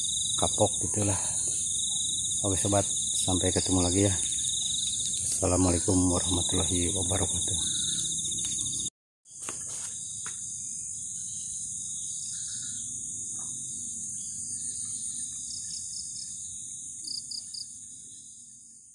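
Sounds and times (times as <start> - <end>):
quick insect chirps: 0.0 - 18.7
insects chorus: 0.0 - 18.9.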